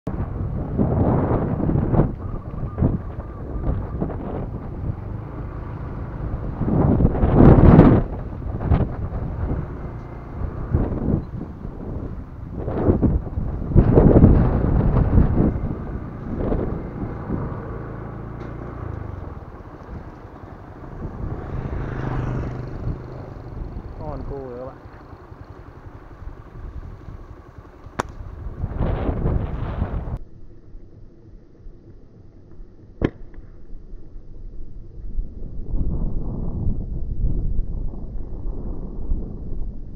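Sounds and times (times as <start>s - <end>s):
wind buffeting microphone: 0.1s - 30.2s, 34.7s - 39.9s.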